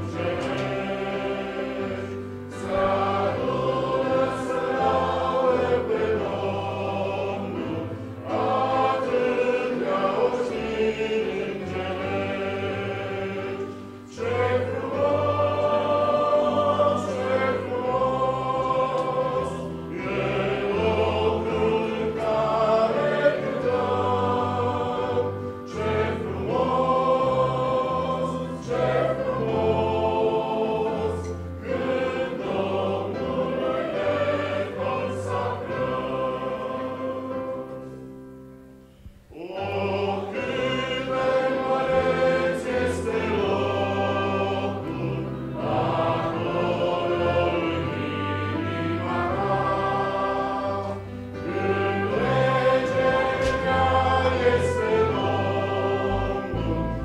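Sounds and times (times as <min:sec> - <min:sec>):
congregation singing a hymn: 0:00.0 - 0:57.0
piano accompaniment: 0:00.0 - 0:57.0.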